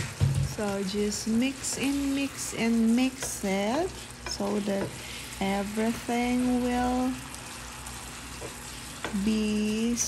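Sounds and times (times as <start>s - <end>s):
meat sizzling in a frying pan: 0.0s - 10.0s.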